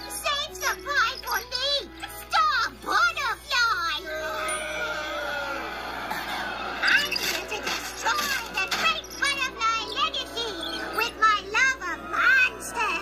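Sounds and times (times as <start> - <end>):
cartoon music: 0.0 - 3.3, 4.3 - 5.3, 6.8 - 12.0
high-pitched cartoon voices: 0.0 - 5.8, 6.8 - 13.0.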